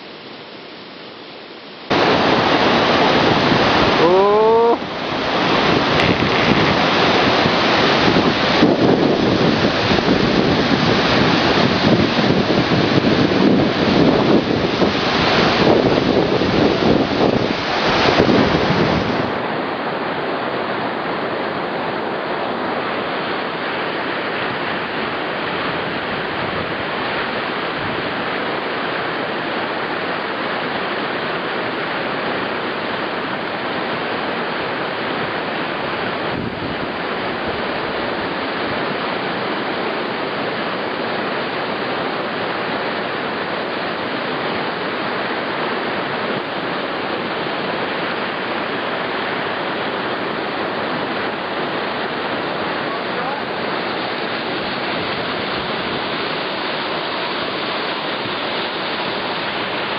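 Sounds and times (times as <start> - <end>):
river rushing over rocks: 1.8 - 59.9.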